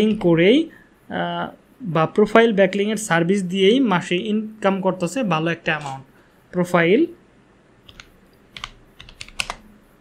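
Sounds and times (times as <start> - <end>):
keyboard typing: 7.8 - 9.8.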